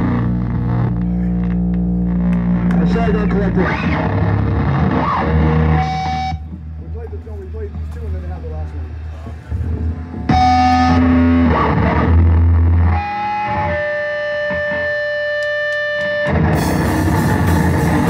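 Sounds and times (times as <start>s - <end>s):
amp hum: 0.0s - 18.0s
distorted electric guitar: 0.0s - 18.0s
band with drum kit: 9.0s - 18.0s.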